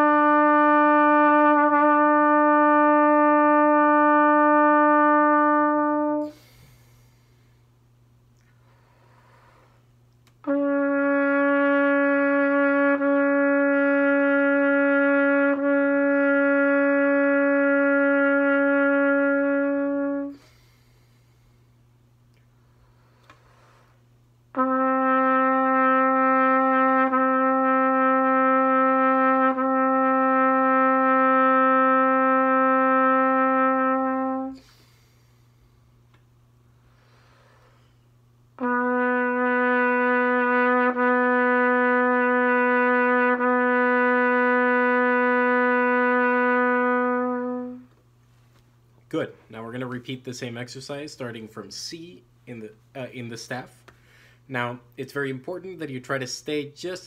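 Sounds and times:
trumpet sustained notes: 0:00.0 - 0:06.7, 0:10.4 - 0:20.7, 0:24.5 - 0:35.2, 0:38.6 - 0:48.0
person breathing: 0:06.2 - 0:10.0, 0:20.3 - 0:24.2, 0:34.6 - 0:36.1, 0:36.7 - 0:38.2, 0:53.9 - 0:54.5.

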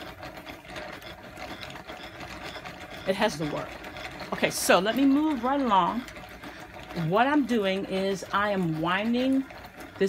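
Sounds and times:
cone winder gearing turning: 0:00.0 - 0:10.0.

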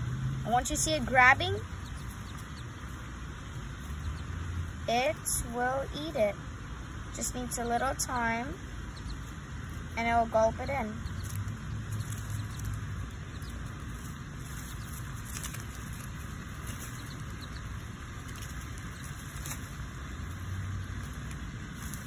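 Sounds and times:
low background rumble: 0:00.0 - 0:22.0.

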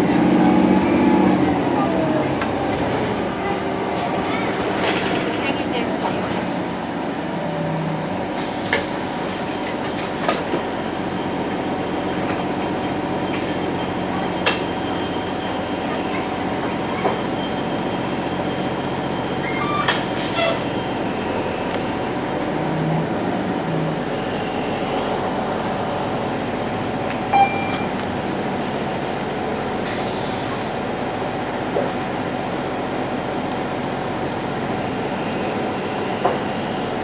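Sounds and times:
steel wheels rumbling on rail: 0:00.0 - 0:37.0.

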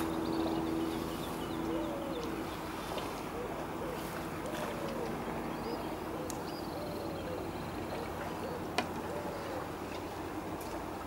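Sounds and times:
calm sea water washing: 0:00.0 - 0:11.0
dove cooing: 0:01.5 - 0:09.8.

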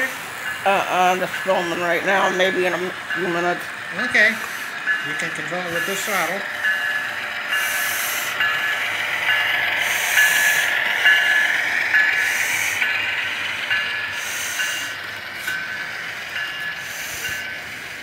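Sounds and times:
model train motor whine: 0:00.0 - 0:18.0
hiss: 0:04.1 - 0:05.0, 0:05.6 - 0:06.5, 0:07.5 - 0:08.8, 0:09.8 - 0:18.0.

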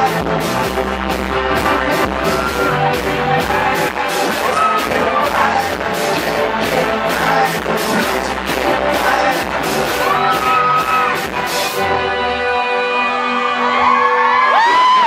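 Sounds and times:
steady drum beat: 0:00.0 - 0:11.8
live pop-rock band: 0:00.0 - 0:15.0.

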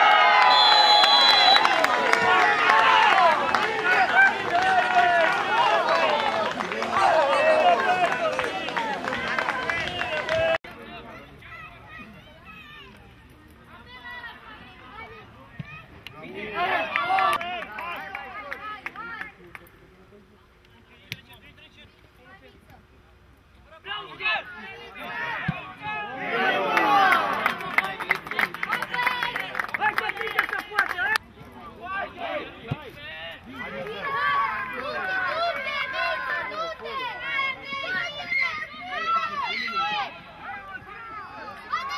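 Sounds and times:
voices shouting and calling out: 0:00.0 - 0:19.5, 0:22.3 - 0:41.9.

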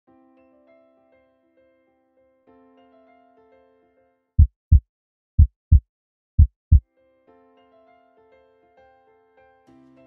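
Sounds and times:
heartbeat thumps: 0:04.4 - 0:04.8, 0:05.4 - 0:05.8, 0:06.4 - 0:06.8.

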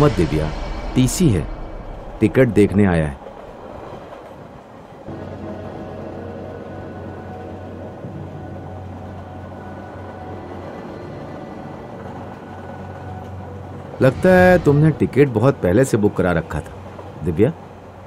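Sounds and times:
background music drone: 0:00.0 - 0:04.2, 0:05.0 - 0:16.9
train carriage rumbling: 0:00.0 - 0:18.0.

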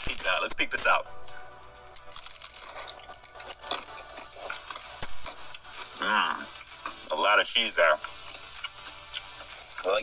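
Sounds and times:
steady high-pitched hiss: 0:00.0 - 0:10.0
crunching and chewing pizza: 0:01.2 - 0:10.0
mouth sounds: 0:05.8 - 0:06.6.

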